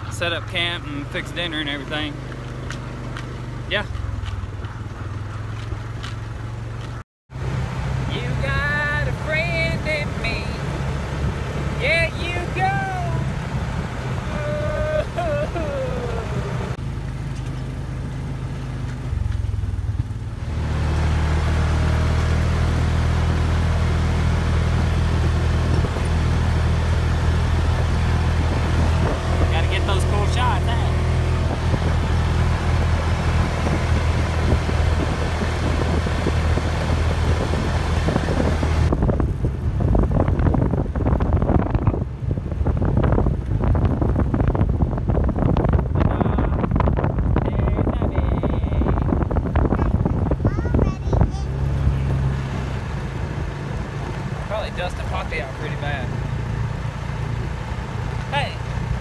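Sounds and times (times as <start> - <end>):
vehicle engine drone: 0.0 - 59.0
wind buffeting microphone: 24.8 - 30.3, 31.0 - 55.4.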